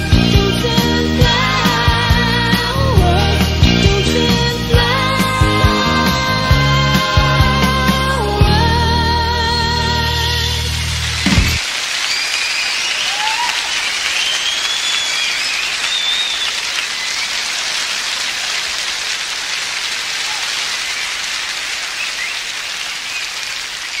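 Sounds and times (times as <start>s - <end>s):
audience applauding: 4.8s - 24.0s
whistles: 12.0s - 17.6s, 21.9s - 24.0s.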